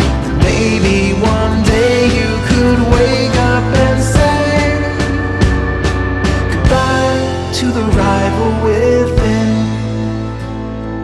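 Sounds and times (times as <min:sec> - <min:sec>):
song with steady beat: 0:00.0 - 0:11.0.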